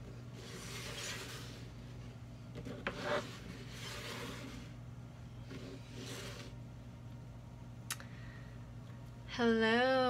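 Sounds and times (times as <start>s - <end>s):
cards rustling and scraping: 0.0s - 4.8s, 5.4s - 6.6s
low steady hum: 0.0s - 10.0s.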